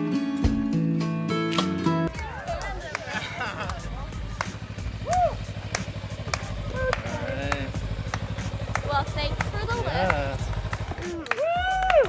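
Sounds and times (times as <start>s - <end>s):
motorcycle engine rumbling: 2.1s - 12.0s.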